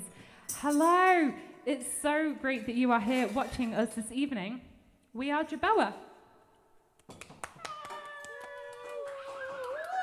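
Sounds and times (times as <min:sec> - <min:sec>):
hand claps: 0:07.0 - 0:10.0.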